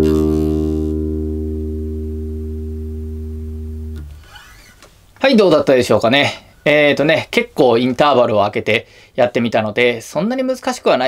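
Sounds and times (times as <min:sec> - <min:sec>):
electric bass low note ringing: 0:00.0 - 0:04.2.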